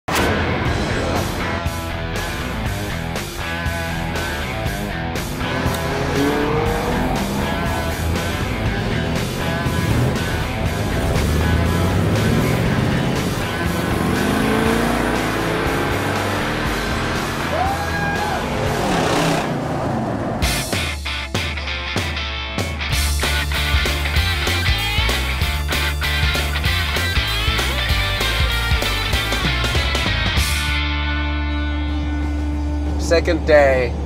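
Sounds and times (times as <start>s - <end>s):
rock music: 0.0s - 34.0s
car engines revving and passing: 3.9s - 20.7s.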